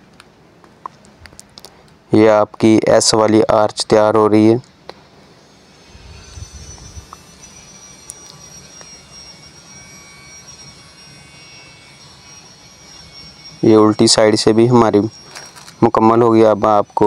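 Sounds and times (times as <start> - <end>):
machine humming with high whine: 0.0 - 17.0.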